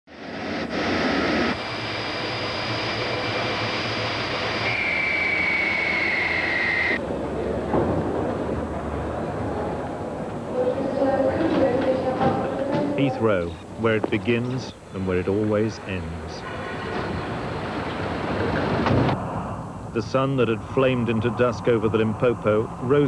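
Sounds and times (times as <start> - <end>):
jet engine whine: 0.1 - 23.0
voices: 6.9 - 18.8, 19.9 - 23.0.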